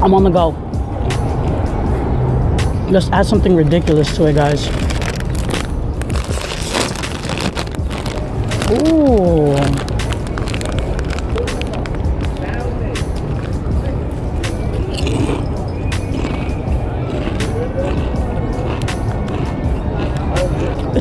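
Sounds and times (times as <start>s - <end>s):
background music: 0.0s - 21.0s
street traffic: 0.0s - 21.0s
potato chips crunching: 4.1s - 12.5s, 14.9s - 15.4s, 16.0s - 21.0s
foil bag crinkling: 4.4s - 12.5s.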